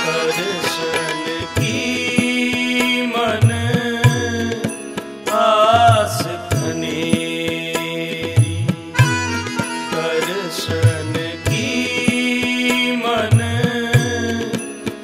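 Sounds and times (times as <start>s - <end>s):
harmonium chords: 0.0s - 15.0s
man singing: 0.0s - 15.0s
tabla drumming: 0.0s - 15.0s.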